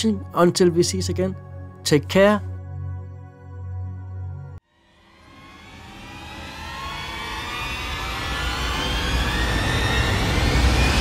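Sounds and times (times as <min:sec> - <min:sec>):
cinematic riser whoosh: 0:04.8 - 0:11.0.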